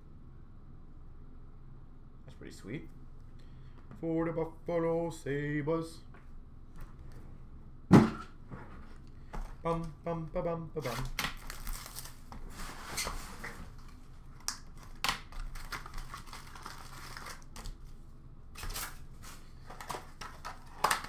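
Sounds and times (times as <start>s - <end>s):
plastic shrink-wrap crinkling and tearing: 10.8s - 13.2s, 13.8s - 17.9s.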